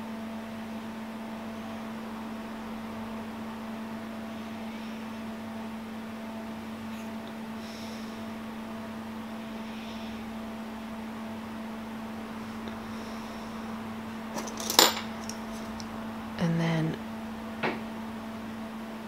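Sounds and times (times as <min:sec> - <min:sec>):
low hum: 0:00.0 - 0:19.0
craft tools clicking and clinking: 0:14.4 - 0:15.9.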